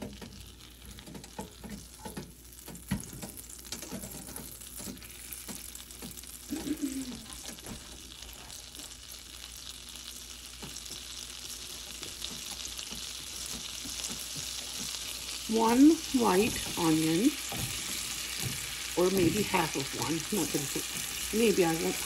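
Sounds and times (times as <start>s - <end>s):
butter sizzling in frying pan: 0.0s - 22.0s.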